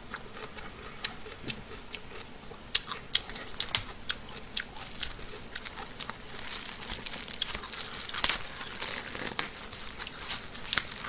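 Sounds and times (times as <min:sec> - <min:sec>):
person eating and chewing: 0:00.0 - 0:11.0.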